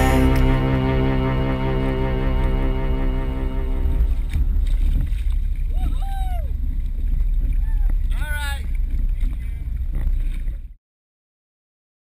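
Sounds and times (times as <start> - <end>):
background music: 0.0 - 4.7
water rumbling: 0.0 - 10.8
wind buffeting camera: 4.0 - 10.8.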